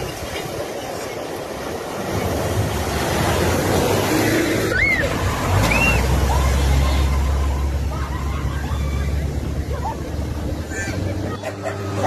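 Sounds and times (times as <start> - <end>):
water spraying and sloshing: 0.0 - 12.0.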